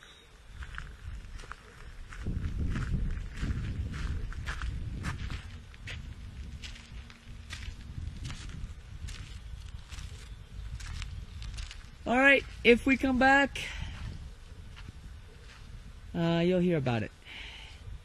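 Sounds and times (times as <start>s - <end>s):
footsteps on dirt trail: 0.0s - 15.9s
low rumble: 2.1s - 12.7s.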